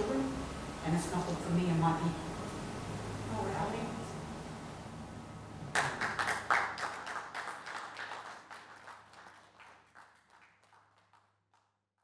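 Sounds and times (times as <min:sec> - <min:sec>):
audience clapping: 0:05.7 - 0:11.8.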